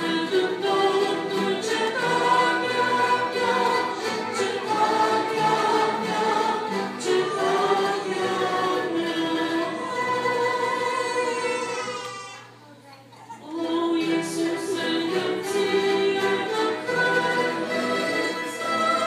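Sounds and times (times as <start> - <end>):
violins playing: 0.0 - 11.9, 13.7 - 19.0
choir singing a hymn: 0.0 - 12.0, 13.6 - 19.0.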